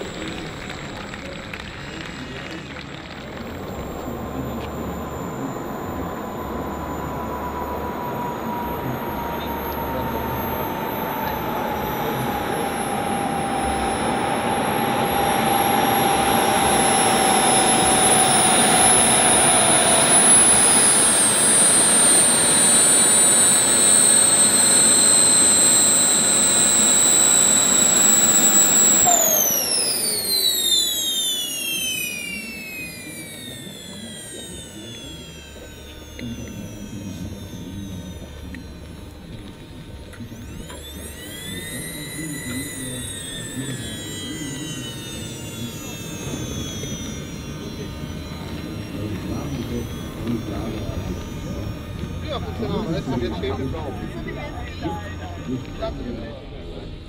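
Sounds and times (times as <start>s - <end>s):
model jet turbines whining: 0.0s - 57.0s.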